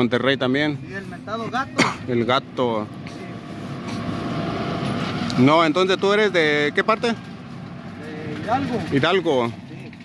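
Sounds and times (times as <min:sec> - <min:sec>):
vehicle engine running: 0:00.0 - 0:10.0.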